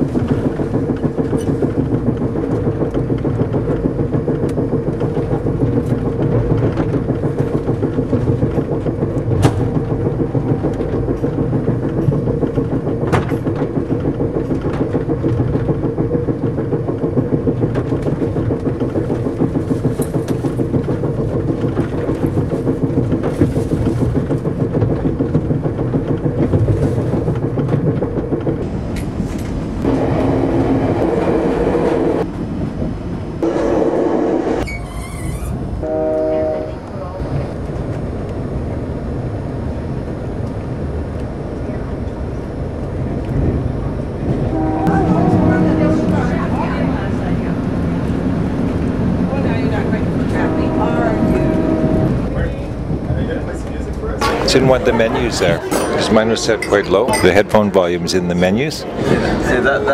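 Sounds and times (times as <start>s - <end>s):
sharp clicks from train wheels: 0.0s - 33.5s
train running rumble: 0.0s - 59.9s
droning tone: 44.3s - 52.4s.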